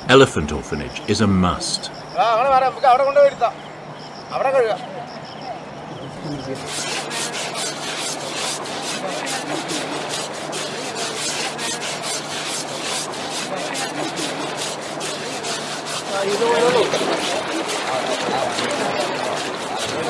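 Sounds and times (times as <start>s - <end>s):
rough scrubbing strokes on hide: 6.6s - 20.0s.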